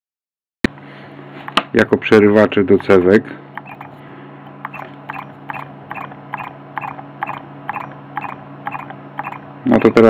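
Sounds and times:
low steady hum: 0.7 - 10.0.

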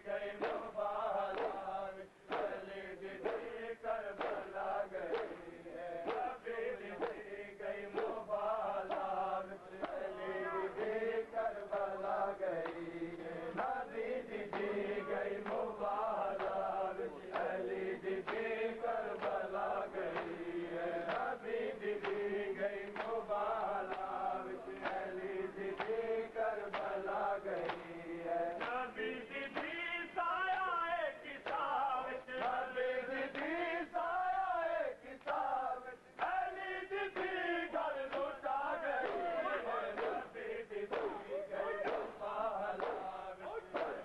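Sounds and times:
crowd of men chanting: 0.0 - 44.0
rhythmic chest-beating slaps: 0.0 - 44.0.

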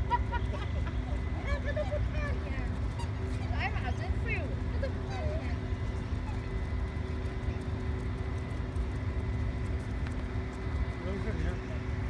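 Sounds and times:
faint voices calling: 0.0 - 12.0
low city rumble: 0.0 - 12.0
thin constant hum: 0.0 - 12.0.

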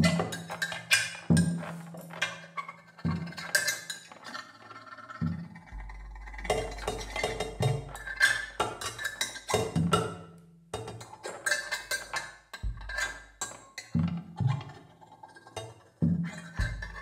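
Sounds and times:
drums struck with mallet: 0.0 - 0.6, 1.3 - 2.1, 5.2 - 10.2, 12.6 - 14.7, 16.0 - 17.0.

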